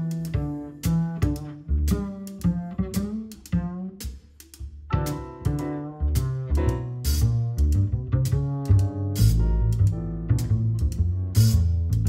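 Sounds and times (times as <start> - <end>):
double bass plucked notes: 0.0 - 12.0.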